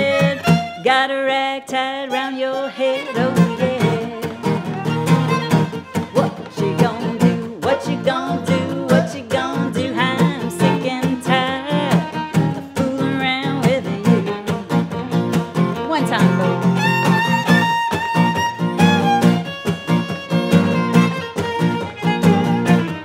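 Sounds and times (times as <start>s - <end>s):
acoustic guitar strumming: 0.0s - 23.0s
fiddle playing: 0.0s - 23.0s.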